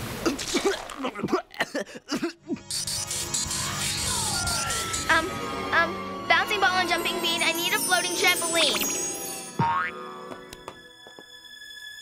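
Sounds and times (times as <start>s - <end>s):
soft background music: 4.2s - 12.0s
cartoon spring boing: 9.6s - 10.0s.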